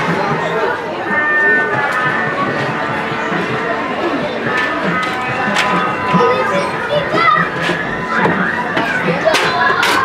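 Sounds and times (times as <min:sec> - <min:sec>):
children calling and chattering: 0:00.0 - 0:10.0.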